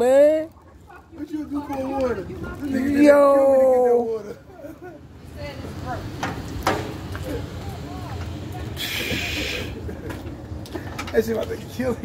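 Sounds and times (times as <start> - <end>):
faint voices: 0.0 - 12.0
low street rumble: 0.0 - 12.0
short hissing noise: 8.8 - 9.9.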